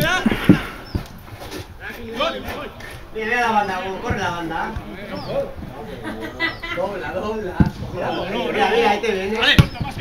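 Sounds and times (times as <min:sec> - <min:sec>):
distant players calling: 0:00.0 - 0:10.0.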